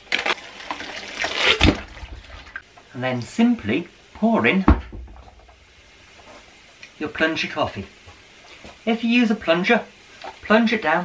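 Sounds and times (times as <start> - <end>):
low thump: 4.7 - 5.6.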